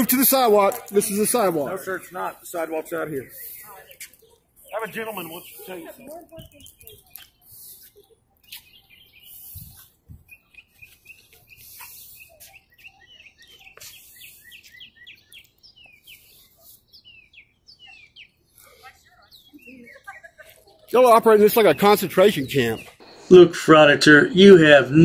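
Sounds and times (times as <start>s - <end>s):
small birds chirping: 0.0s - 24.7s.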